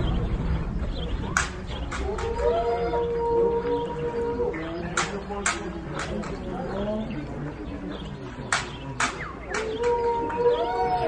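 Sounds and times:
macaques calling: 0:01.3 - 0:11.0.

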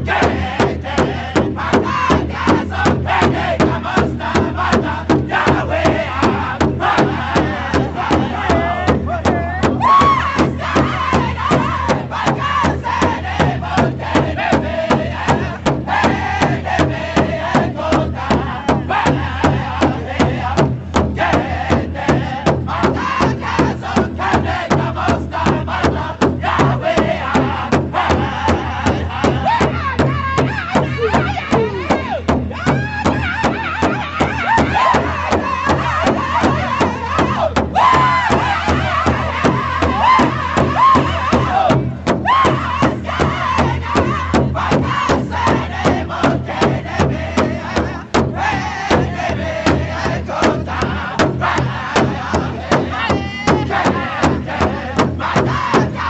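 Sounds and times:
large hide drum beating: 0:00.0 - 0:56.0
men singing in unison: 0:00.0 - 0:56.0.

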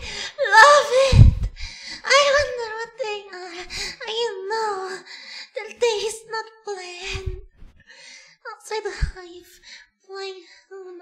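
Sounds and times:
thump on microphone: 0:01.0 - 0:01.6.

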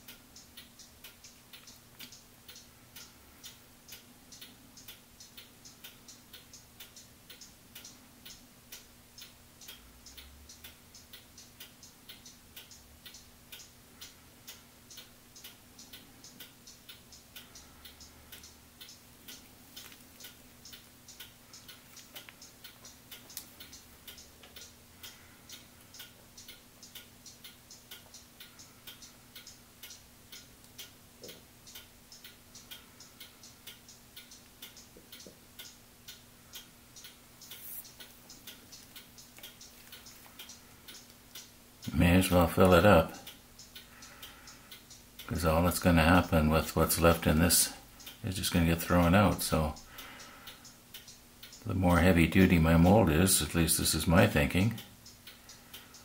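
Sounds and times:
clock-like ticking: 0:00.0 - 0:56.0.

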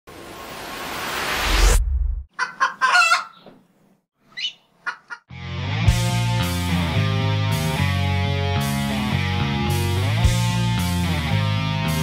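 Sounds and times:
chicken clucking and squawking: 0:02.3 - 0:03.6, 0:04.3 - 0:05.3
electric guitars and bass: 0:05.3 - 0:12.0.

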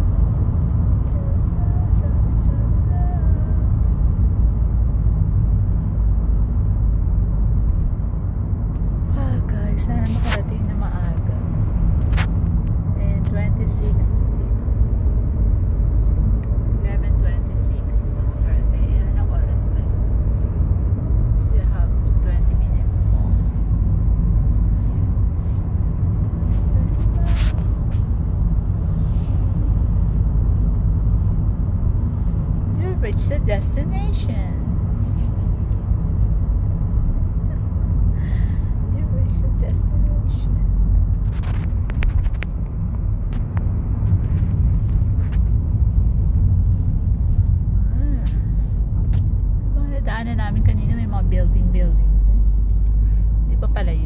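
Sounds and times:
car cabin road rumble: 0:00.0 - 0:54.0.

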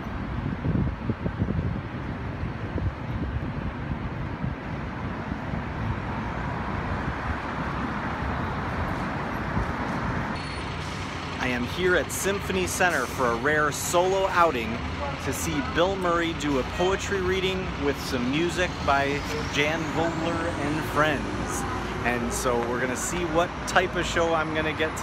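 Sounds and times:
traffic rumble: 0:00.0 - 0:25.0.

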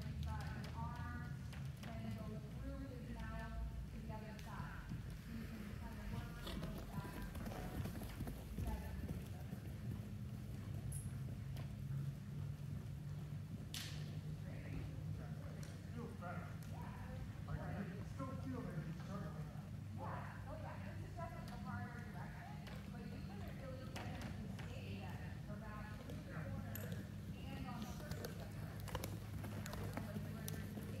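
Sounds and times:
low steady hum: 0:00.0 - 0:31.0
horse hoofbeats on soft ground: 0:00.4 - 0:15.4, 0:20.8 - 0:31.0.

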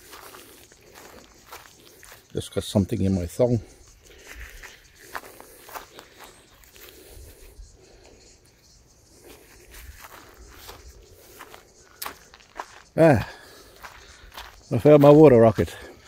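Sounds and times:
flip-flop footsteps on gravel: 0:00.0 - 0:02.8, 0:04.0 - 0:07.1, 0:09.2 - 0:16.0.

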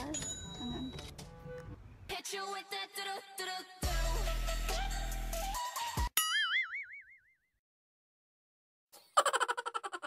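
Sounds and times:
bass-heavy pop music: 0:02.6 - 0:06.0.

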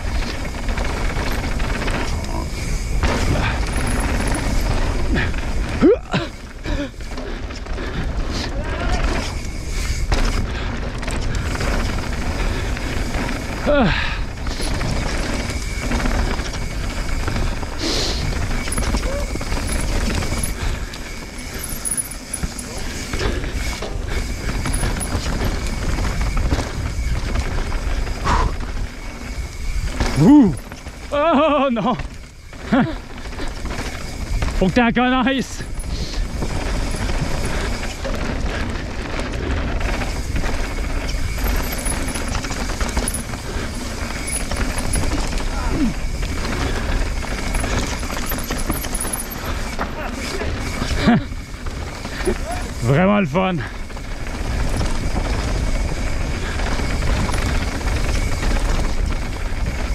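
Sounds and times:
bike tyres on dirt trail: 0:00.0 - 0:59.9.

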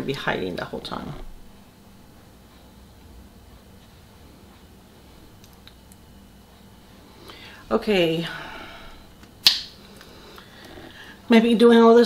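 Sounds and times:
faint low hum: 0:00.0 - 0:12.0
woman speaking: 0:07.6 - 0:08.9, 0:11.3 - 0:12.0.

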